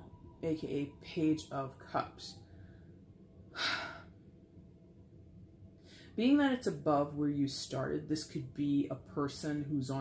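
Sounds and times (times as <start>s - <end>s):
person sighing: 3.5s - 4.2s.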